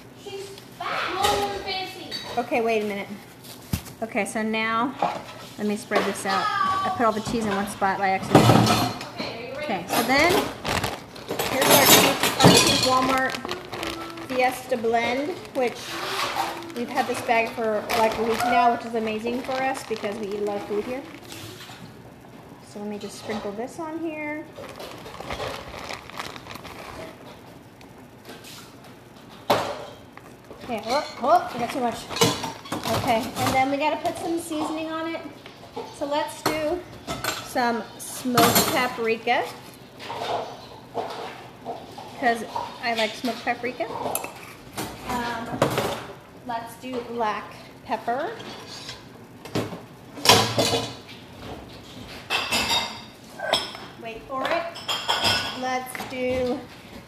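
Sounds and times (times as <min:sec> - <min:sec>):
pepper container rattling: 0:10.0 - 0:21.9, 0:24.4 - 0:27.5
plastic bag crinkling: 0:10.0 - 0:22.0, 0:23.8 - 0:28.0.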